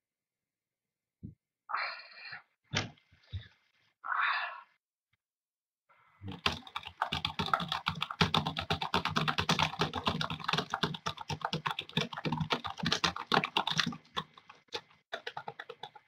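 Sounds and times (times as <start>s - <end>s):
typing on computer keyboard: 6.3s - 16.0s.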